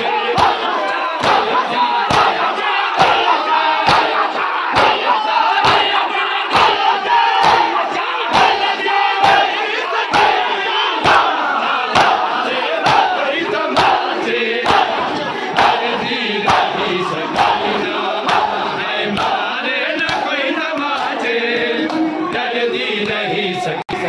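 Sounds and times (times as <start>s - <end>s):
men striking chests in unison: 0.0s - 22.2s
many voices chanting: 0.0s - 24.0s.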